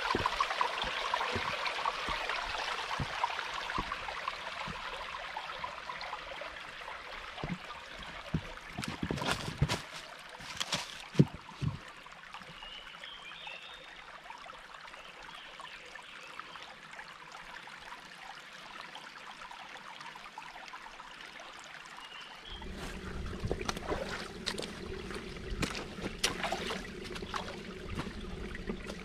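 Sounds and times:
footsteps on stream stones: 0.0s - 5.2s, 7.4s - 11.9s, 22.6s - 29.0s
stream trickling over rocks: 0.0s - 29.0s.

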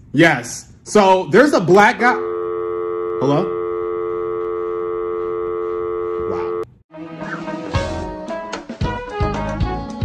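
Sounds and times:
telephone dial tone: 2.3s - 6.7s.

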